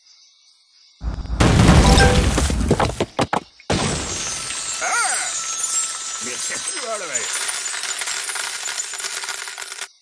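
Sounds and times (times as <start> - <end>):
gold coins clinking: 3.9 - 10.0.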